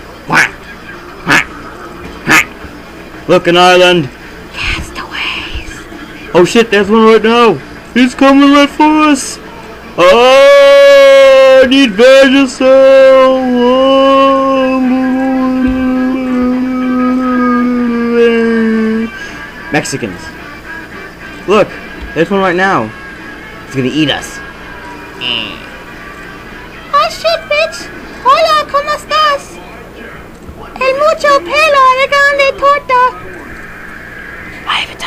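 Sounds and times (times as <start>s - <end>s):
person singing a long note: 13.4s - 19.2s.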